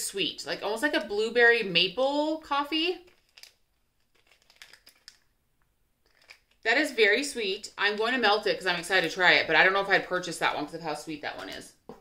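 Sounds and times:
plastic wrapper crinkling: 0:03.0 - 0:05.4, 0:06.0 - 0:06.7.

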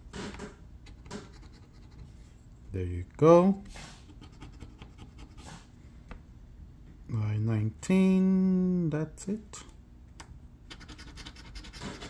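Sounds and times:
coin scraping scratch card: 0:10.7 - 0:12.0.

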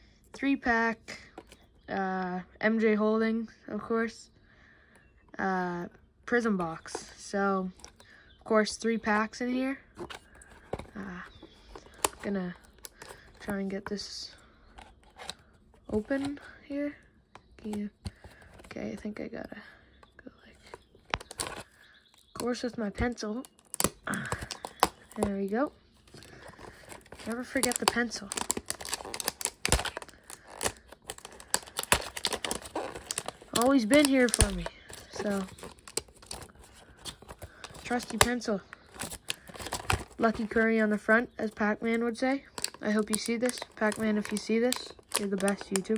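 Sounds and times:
cardboard box handled: 0:09.9 - 0:14.0, 0:26.2 - 0:40.6
shrink-wrap crinkling and tearing: 0:10.0 - 0:13.6, 0:20.6 - 0:45.9.

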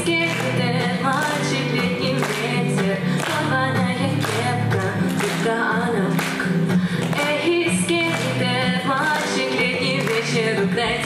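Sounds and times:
acoustic guitar strumming: 0:00.0 - 0:11.0
woman singing pop song: 0:00.0 - 0:11.0.

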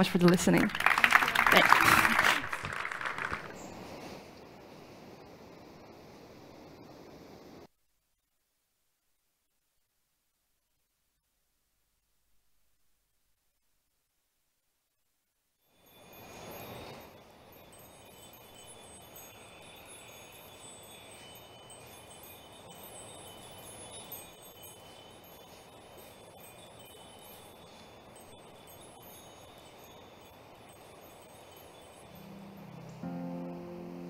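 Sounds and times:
steady soft hiss: 0:03.5 - 0:09.2, 0:15.8 - 0:34.0
faint wind chimes ringing: 0:15.6 - 0:34.0.

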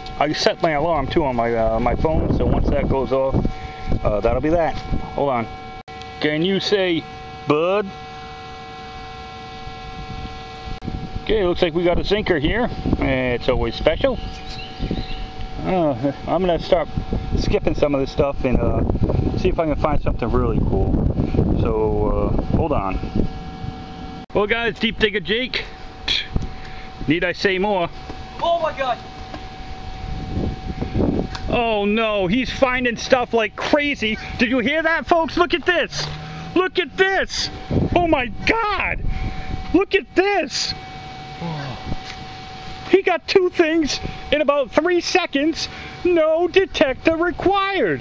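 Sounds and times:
faint steady high tone: 0:00.0 - 0:48.0
louder bursts of noise: 0:00.0 - 0:48.0
steady electronic hum: 0:00.0 - 0:48.0.

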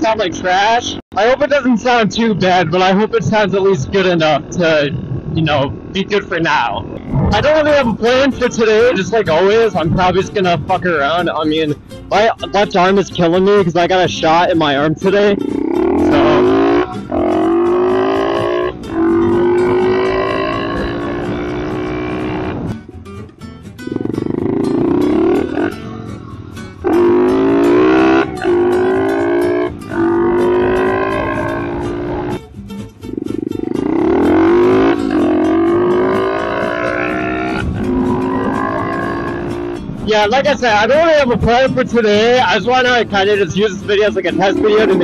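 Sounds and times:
motorbike engine accelerating: 0:02.6 - 0:11.3, 0:13.0 - 0:23.0, 0:23.8 - 0:40.6.

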